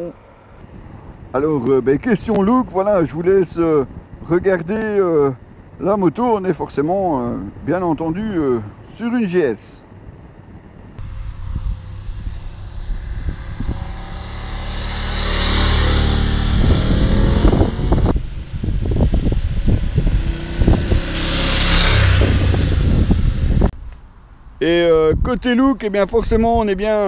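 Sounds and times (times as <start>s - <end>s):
motorcycle riding past: 11.0s - 23.7s.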